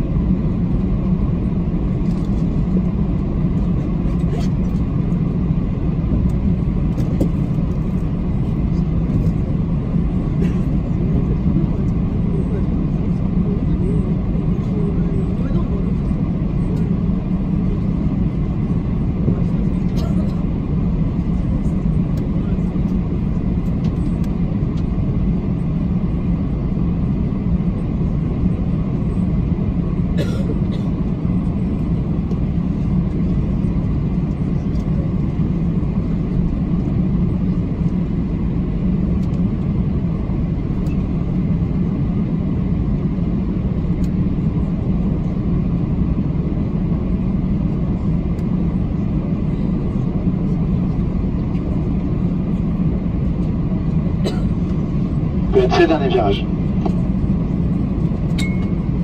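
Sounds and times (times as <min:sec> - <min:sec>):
aircraft cabin rumble: 0:00.0 - 0:59.0.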